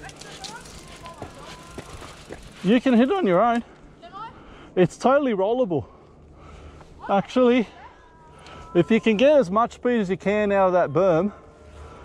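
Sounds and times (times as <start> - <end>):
bike tyres rumbling on dirt: 0.0 - 3.6.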